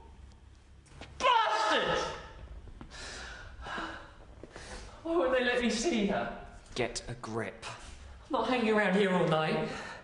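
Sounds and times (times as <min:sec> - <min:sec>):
man shouting angrily: 0:01.2 - 0:02.3
man breathing heavily: 0:02.8 - 0:05.0.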